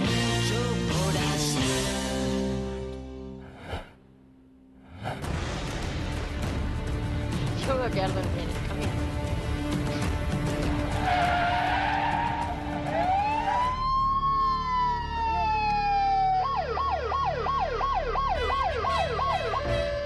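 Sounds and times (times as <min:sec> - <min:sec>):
emergency vehicle siren: 0:11.0 - 0:20.0.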